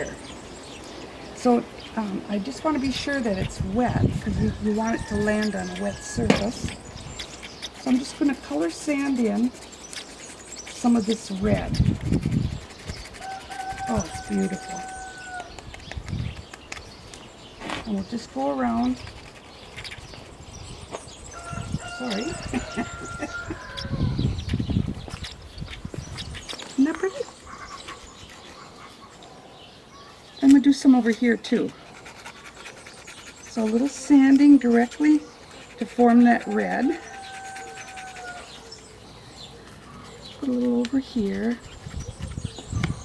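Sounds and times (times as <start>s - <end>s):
pencil scratching on sandpaper: 2.7s - 16.5s, 18.1s - 29.2s, 31.1s - 38.9s, 40.4s - 43.0s
rooster crowing: 13.2s - 15.5s, 21.4s - 24.2s, 36.4s - 38.6s.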